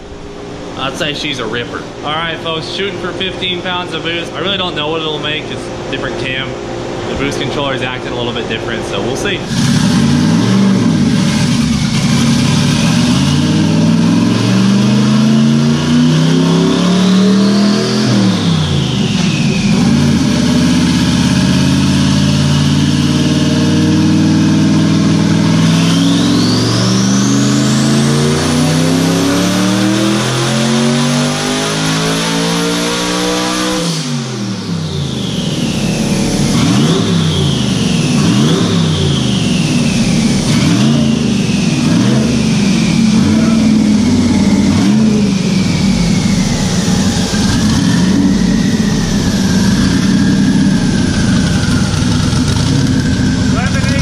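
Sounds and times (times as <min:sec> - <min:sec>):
car engine revving on dyno: 0:00.0 - 0:54.0
turbo whine: 0:00.0 - 0:54.0.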